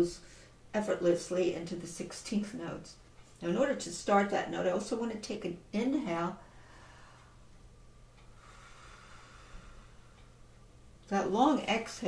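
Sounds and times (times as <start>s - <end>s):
person inhaling: 6.5s - 7.4s, 8.3s - 10.3s.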